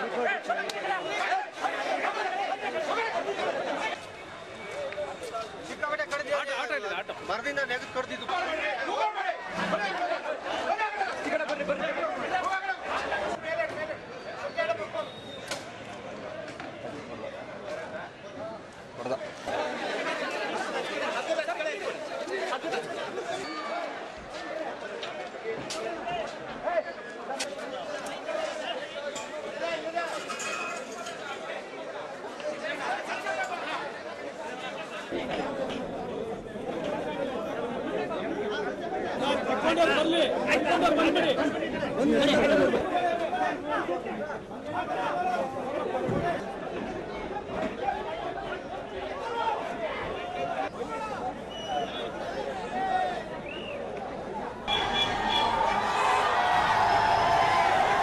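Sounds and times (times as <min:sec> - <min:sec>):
overlapping voices chatter: 0:00.0 - 0:58.0.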